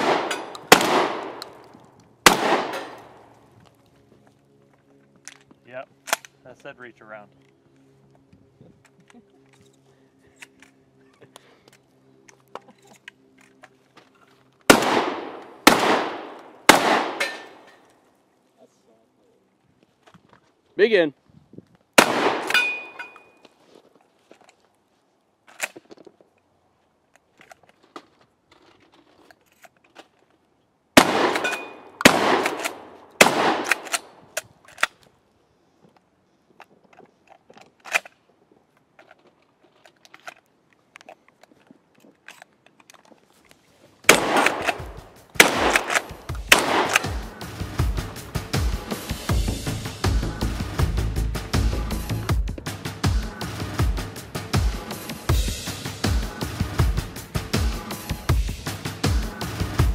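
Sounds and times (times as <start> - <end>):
shotgun shots: 0.0 - 1.6, 2.2 - 3.3, 14.7 - 17.7, 22.0 - 23.0, 31.0 - 34.2, 44.1 - 47.6
electronic music: 47.2 - 59.9.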